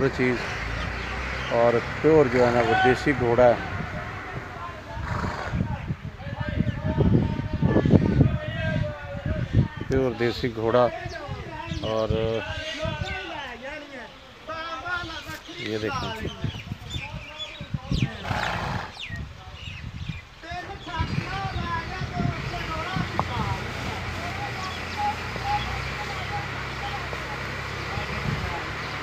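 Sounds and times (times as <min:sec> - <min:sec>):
people's voices: 0:00.0 - 0:19.8, 0:20.4 - 0:29.0
birds chirping: 0:00.0 - 0:29.0
horse neighing: 0:02.4 - 0:05.7, 0:18.0 - 0:19.1
horse snorting: 0:04.9 - 0:05.7, 0:18.0 - 0:19.2.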